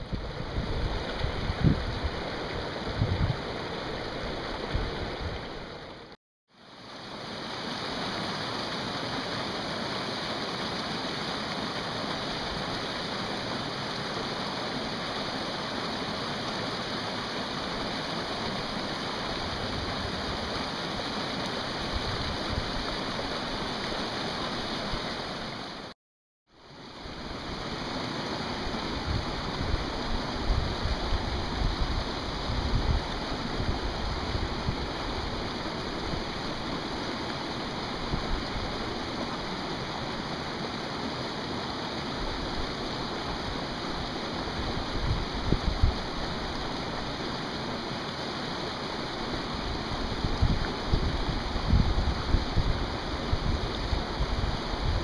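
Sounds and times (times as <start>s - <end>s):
creek water rushing over rocks: 0.0s - 55.0s.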